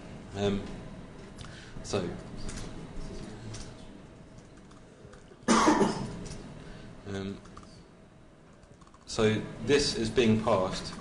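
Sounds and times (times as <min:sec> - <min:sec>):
typing on computer keyboard: 0:04.4 - 0:05.2, 0:08.6 - 0:09.1.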